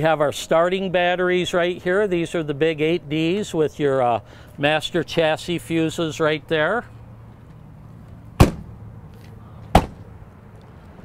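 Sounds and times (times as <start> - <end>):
compartment door slamming: 9.7 - 10.0.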